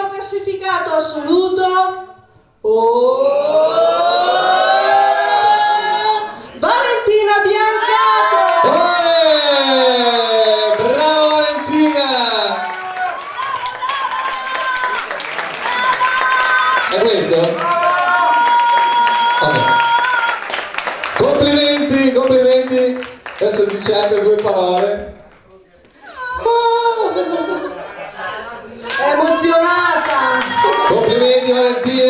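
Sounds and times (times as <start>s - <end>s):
audience applauding and cheering: 7.9s - 25.4s, 28.8s - 32.0s.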